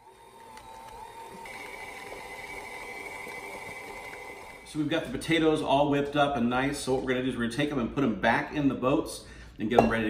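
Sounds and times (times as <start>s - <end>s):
stand mixer motor whine: 0.0s - 4.8s.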